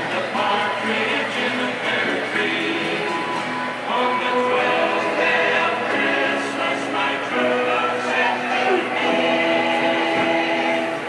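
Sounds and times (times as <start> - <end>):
choir singing long held notes: 0.0 - 11.0.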